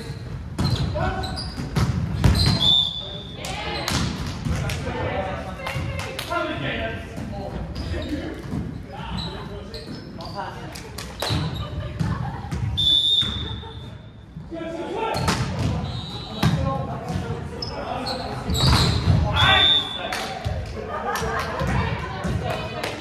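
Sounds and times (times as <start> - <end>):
referee whistle blasts: 2.4 - 3.2, 12.8 - 13.7, 19.4 - 20.0.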